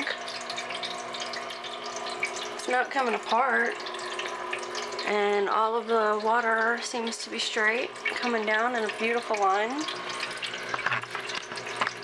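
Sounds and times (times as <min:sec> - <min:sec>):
steady hum: 0:00.0 - 0:12.0
water trickling into bowl: 0:00.0 - 0:12.0.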